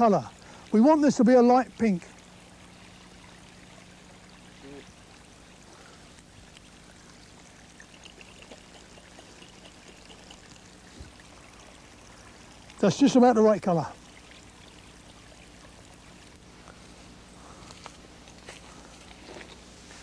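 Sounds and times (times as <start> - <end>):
faint steady hiss: 0.0 - 20.0
water sloshing in a glass jar: 6.4 - 16.8.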